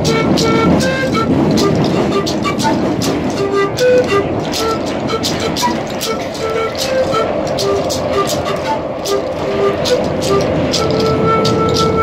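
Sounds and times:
hand rattle shaken: 0.0 - 12.0
pan flute melody: 0.0 - 12.0
train rumble: 0.0 - 12.0.

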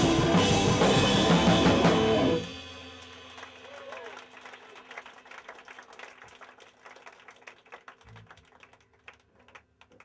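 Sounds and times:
crowd clapping: 2.8 - 10.0.

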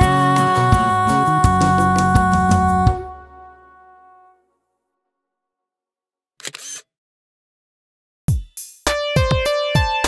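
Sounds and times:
camera shutter click: 6.4 - 6.9.

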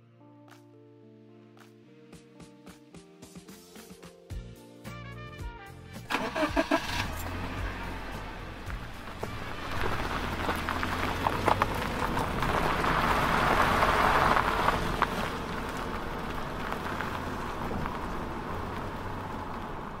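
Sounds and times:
low engine hum: 6.1 - 20.0
rushing noise with crackles: 6.8 - 20.0.

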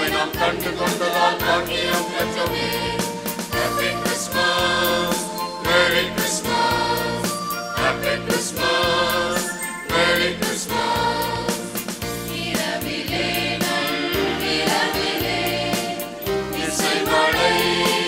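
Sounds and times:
choir singing a carol: 0.0 - 18.0
steady percussion beat: 0.0 - 18.0
electronic keyboard: 1.2 - 12.2.

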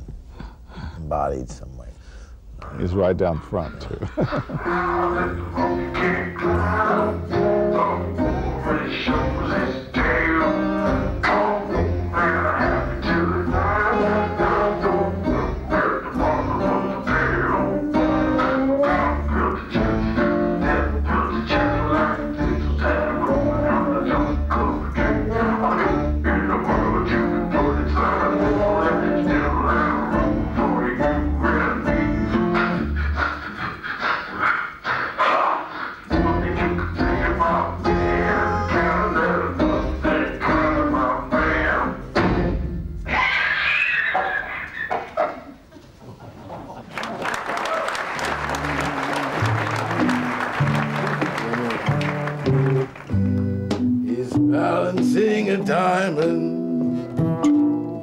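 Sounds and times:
theatre band music: 4.5 - 33.6, 36.0 - 43.4, 47.8 - 58.0
applause: 46.8 - 53.2
plucked bass notes: 49.8 - 58.0.

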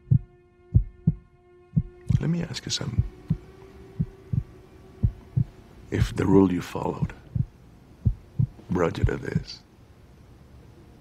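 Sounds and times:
heartbeat double thumps: 0.0 - 6.2, 7.0 - 9.5
faint low drone: 0.0 - 11.0.

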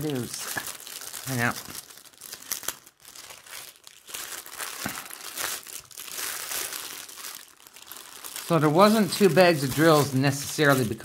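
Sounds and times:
plastic bags crinkling: 0.0 - 11.0.

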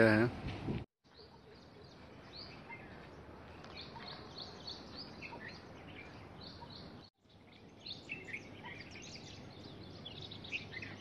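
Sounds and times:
faint outdoor background hiss: 0.0 - 11.0
small birds chirping: 1.0 - 11.0.

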